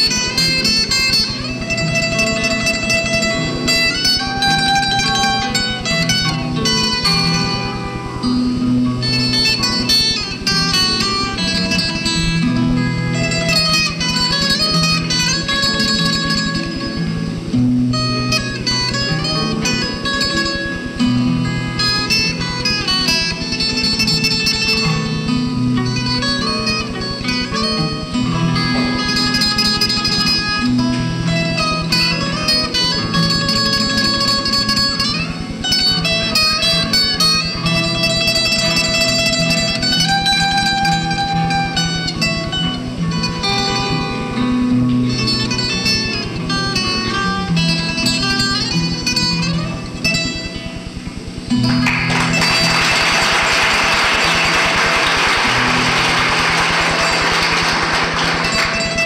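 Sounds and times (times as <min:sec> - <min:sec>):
solo string instrument melody: 0:00.0 - 0:52.8.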